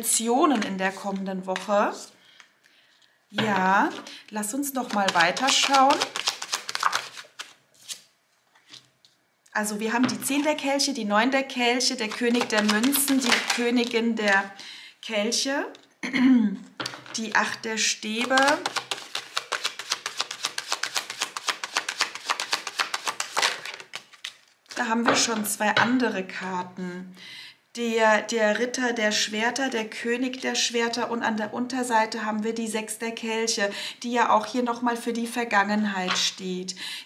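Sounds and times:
cards being shuffled: 0:04.7 - 0:08.9, 0:12.0 - 0:14.4, 0:18.2 - 0:24.8.

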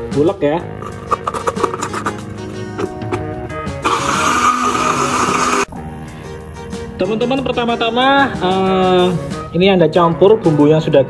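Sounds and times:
background music: 0:00.0 - 0:11.0
electric blender motor running: 0:03.8 - 0:05.7.

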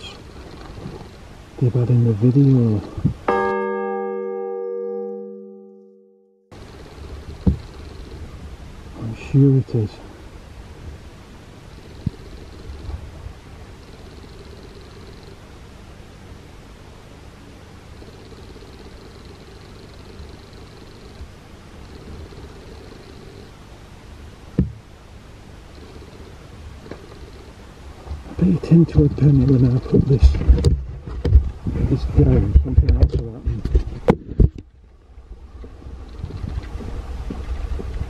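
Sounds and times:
low outdoor rumble: 0:00.0 - 0:04.1, 0:06.5 - 0:38.0
faint hum: 0:00.0 - 0:38.0.

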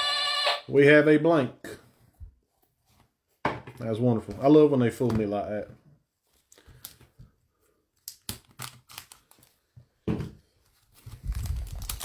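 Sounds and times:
man talking: 0:00.7 - 0:01.9, 0:03.7 - 0:05.8.

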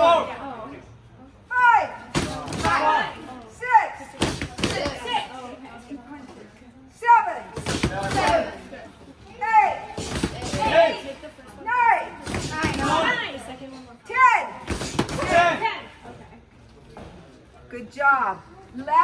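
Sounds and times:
boxing gloves hitting focus mitts: 0:04.2 - 0:05.2.

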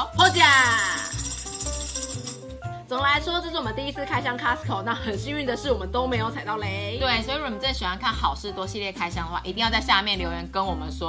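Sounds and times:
tambourine jingles rattling: 0:00.0 - 0:02.7.

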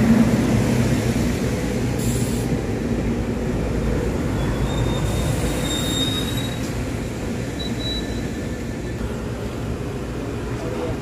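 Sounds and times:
train wheels rumbling on rail: 0:00.0 - 0:11.0
high wheel squeals: 0:04.3 - 0:06.9, 0:07.5 - 0:09.0.

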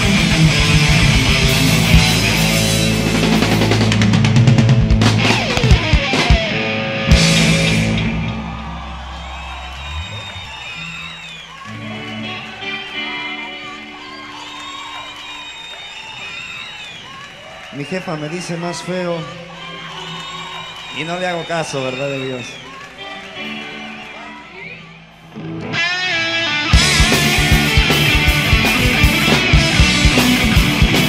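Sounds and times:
live rock band playing: 0:00.0 - 0:10.9, 0:25.4 - 0:31.0
crowd noise: 0:00.0 - 0:31.0.

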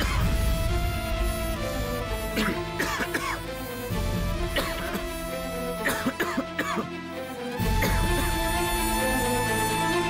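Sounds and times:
background music: 0:00.0 - 0:10.0
man coughing: 0:02.4 - 0:03.4, 0:04.5 - 0:05.1, 0:05.8 - 0:06.9.

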